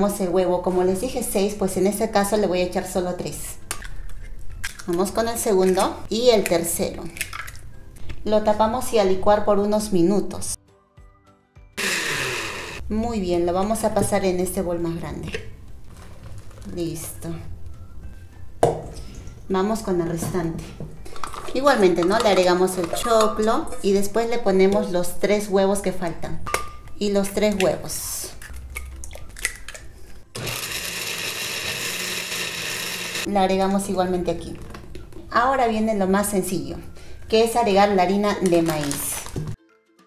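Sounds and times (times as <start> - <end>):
eggs cracking: 3.6 - 5.9, 7.1 - 7.7, 27.5 - 30.3
blender running at high speed: 11.8 - 12.8, 30.4 - 33.3.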